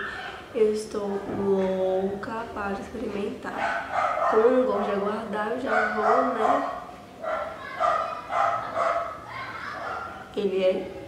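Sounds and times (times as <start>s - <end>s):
dog barking: 3.6s - 4.9s, 5.7s - 10.3s.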